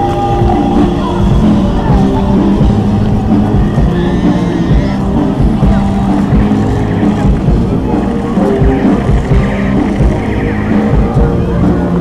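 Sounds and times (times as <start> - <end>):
crowd noise: 0.0 - 12.0
music over loudspeakers: 0.0 - 12.0
turboprop aircraft engines droning: 0.0 - 12.0.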